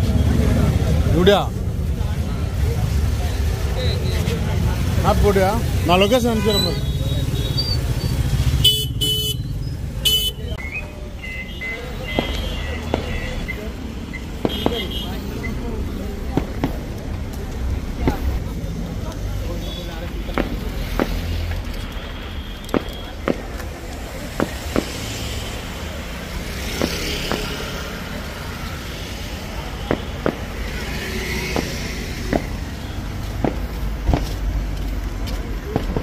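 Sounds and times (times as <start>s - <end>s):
crowd voices: 0.0s - 8.6s, 9.5s - 36.0s
vehicle traffic rumble: 0.0s - 36.0s.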